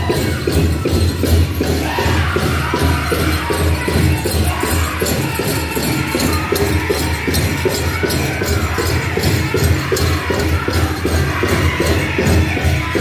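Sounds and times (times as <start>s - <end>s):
high-pitched group singing: 0.0s - 13.0s.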